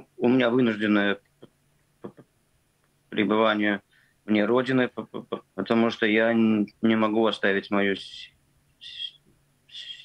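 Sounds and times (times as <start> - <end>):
man speaking: 0.0 - 1.3, 3.1 - 10.0
faint breath hiss: 0.0 - 10.0.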